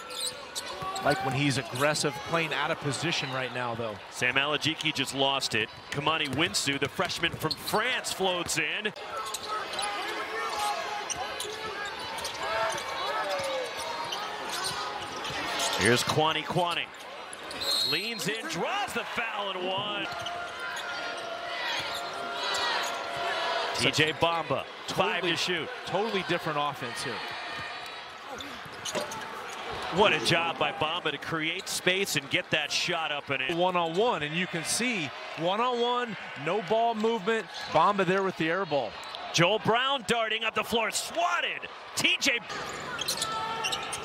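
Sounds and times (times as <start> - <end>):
sneaker squeaks: 0.0 - 1.8, 9.2 - 16.0, 16.9 - 18.4, 20.0 - 23.1, 28.3 - 29.8, 42.5 - 44.0
arena crowd murmur: 0.0 - 44.0.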